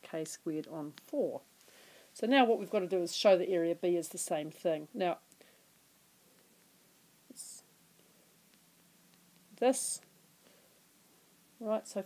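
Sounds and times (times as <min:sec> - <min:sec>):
soft breath-like hiss: 0:01.6 - 0:02.2, 0:10.4 - 0:11.3.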